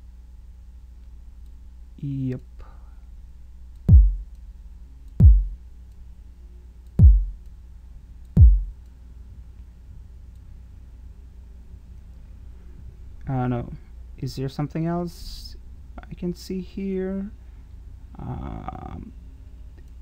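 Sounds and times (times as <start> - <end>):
low steady hum: 0.0 - 20.0
electronic kick drum hits: 3.9 - 4.3, 5.2 - 5.6, 7.0 - 7.4, 8.4 - 8.8.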